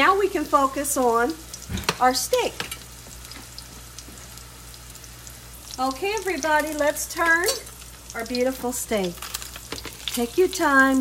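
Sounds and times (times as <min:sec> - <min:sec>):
steak sizzling in a frying pan: 0:00.0 - 0:11.0.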